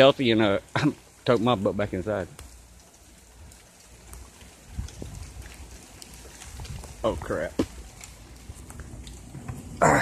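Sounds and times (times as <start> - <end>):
light rain falling: 0.0 - 10.0
wind rumble on microphone: 3.3 - 10.0.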